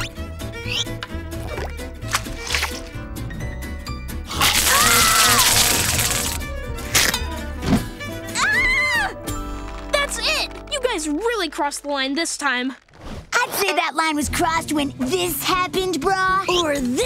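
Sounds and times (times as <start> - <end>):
cartoon background music: 0.0 - 12.2, 13.4 - 17.0.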